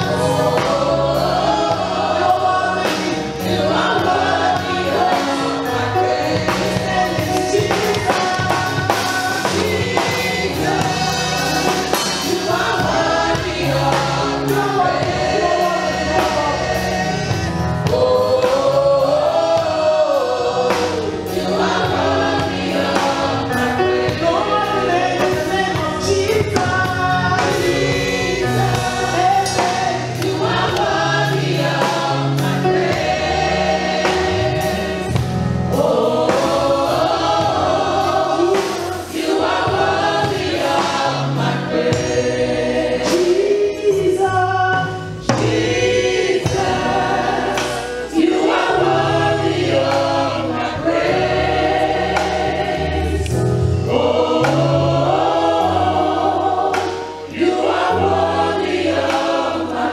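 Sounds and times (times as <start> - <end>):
congregation singing: 0.0 - 59.9
instrumental accompaniment: 0.0 - 59.9
women singing worship song: 0.0 - 59.9.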